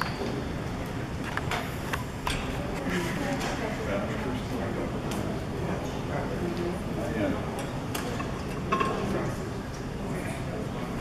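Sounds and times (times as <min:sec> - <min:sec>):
murmur of people: 0:00.0 - 0:11.0.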